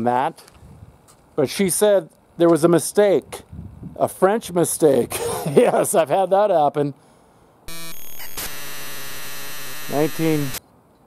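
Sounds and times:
buzzy tone: 0:07.7 - 0:10.6
loud static hiss: 0:07.7 - 0:10.6.

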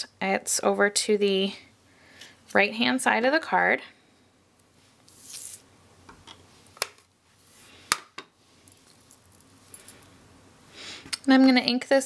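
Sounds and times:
soft rustle: 0:06.5 - 0:07.8, 0:08.4 - 0:10.2.

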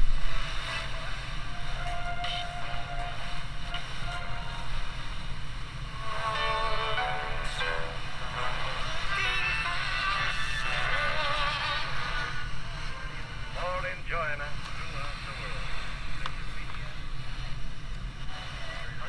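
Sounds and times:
radio playing music and singing: 0:00.0 - 0:19.0.

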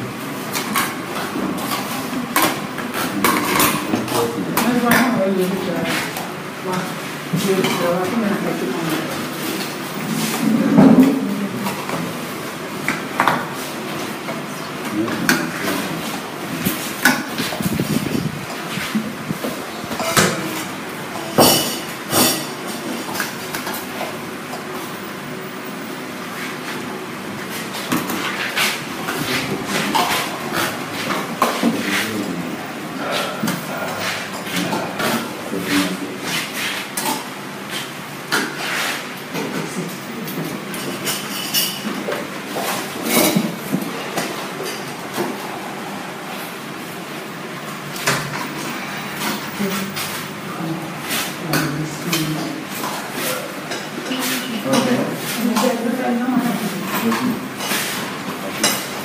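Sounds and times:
murmur of voices: 0:31.6 - 0:36.4.

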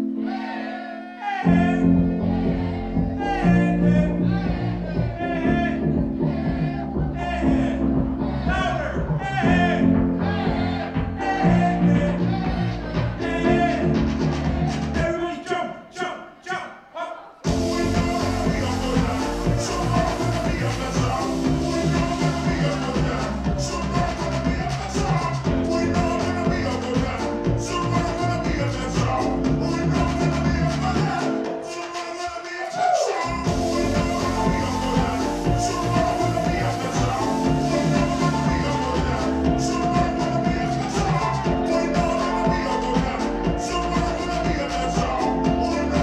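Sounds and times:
electronic indie-pop music: 0:00.0 - 0:15.7, 0:17.4 - 0:46.0
man singing: 0:01.2 - 0:46.0.

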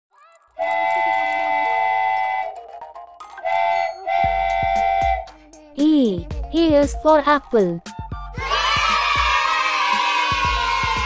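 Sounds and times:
cartoon train whistle: 0:00.6 - 0:02.8, 0:03.4 - 0:05.4.

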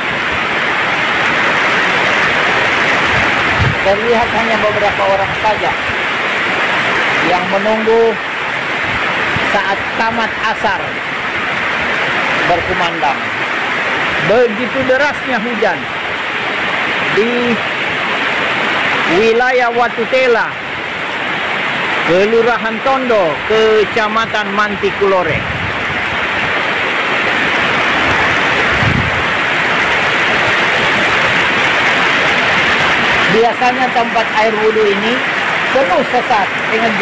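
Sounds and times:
heavy rain on plants: 0:00.0 - 0:37.0.

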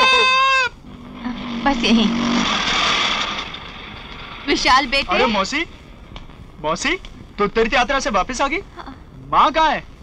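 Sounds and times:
auto-rickshaw engine running: 0:00.8 - 0:06.0.

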